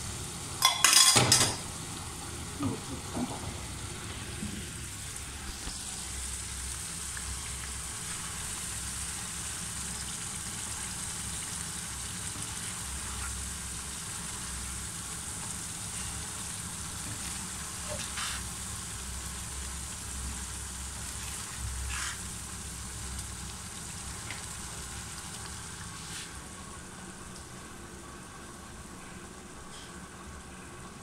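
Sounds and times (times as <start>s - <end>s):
rice sizzling in a pan: 0.0s - 31.0s
spatula scraping a pan: 21.8s - 22.3s.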